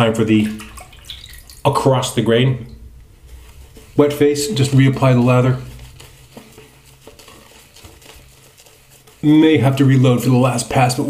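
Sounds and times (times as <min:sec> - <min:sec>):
brush crackling in lather: 0:02.8 - 0:11.0.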